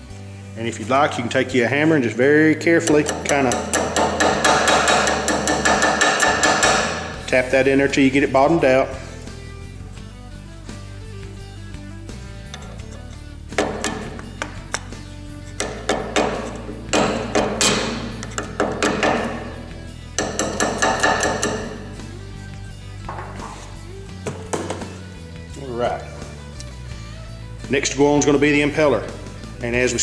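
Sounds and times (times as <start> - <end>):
background music: 0.0 - 30.0
hand tool tapping metal: 2.7 - 7.5, 12.4 - 22.4, 23.0 - 25.0.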